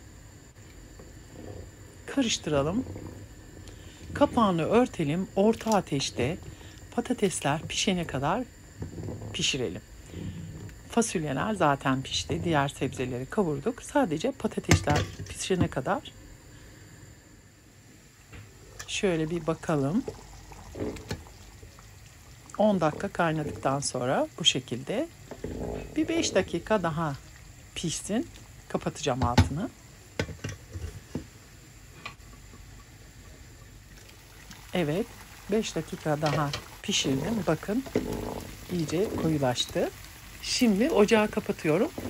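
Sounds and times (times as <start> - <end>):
liquid sloshing: 18.7 - 24.0, 33.8 - 42.0.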